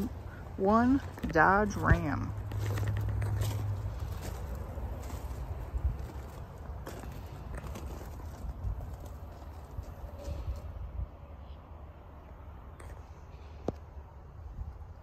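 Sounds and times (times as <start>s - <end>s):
footsteps on gravel: 0.0s - 10.6s.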